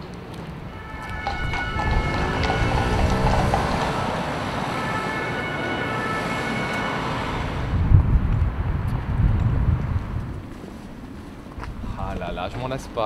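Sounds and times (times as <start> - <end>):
city street traffic: 0.0 - 13.0
heavy truck passing: 0.6 - 10.2.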